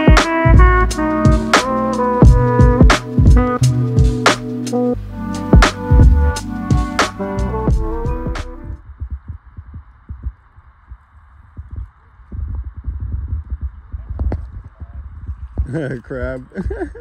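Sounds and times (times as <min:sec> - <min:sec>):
background music with drum beat: 0:00.0 - 0:10.4
wind rumbling on microphone: 0:08.8 - 0:17.0.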